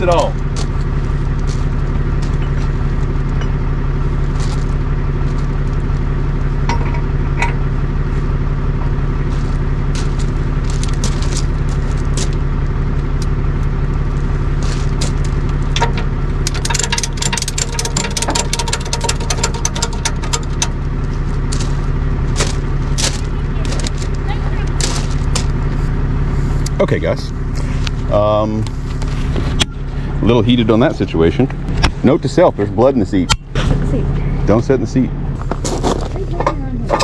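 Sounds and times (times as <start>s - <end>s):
truck engine idling: 0.0s - 37.0s.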